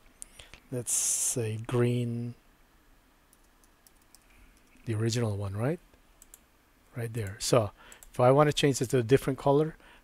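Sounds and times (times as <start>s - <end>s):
man talking: 0.7s - 2.4s, 4.9s - 5.8s, 6.9s - 9.8s
keyboard and mouse clicks: 3.3s - 4.9s, 6.2s - 6.4s.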